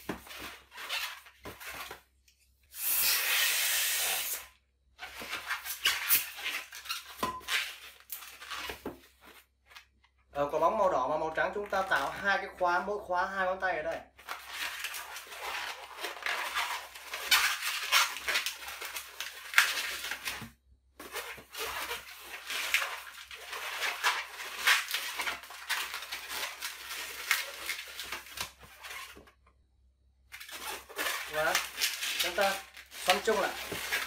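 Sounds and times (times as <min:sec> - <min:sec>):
rubbery balloon squeaks: 0:00.0 - 0:01.8, 0:02.8 - 0:09.2, 0:14.3 - 0:20.4, 0:21.0 - 0:29.2, 0:30.3 - 0:34.0.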